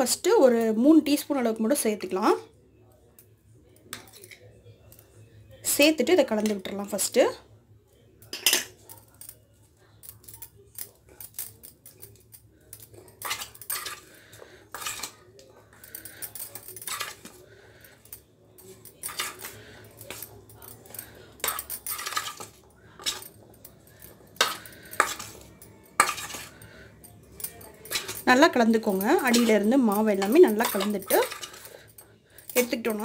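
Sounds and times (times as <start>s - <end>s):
steel kitchenware clanking: 5.6s - 7.3s, 8.2s - 9.4s, 10.0s - 33.0s
metal spoon clinking in bowl: 8.2s - 33.0s
hand mixing kernels in steel bowl: 21.0s - 23.2s, 24.2s - 26.8s, 27.7s - 31.7s.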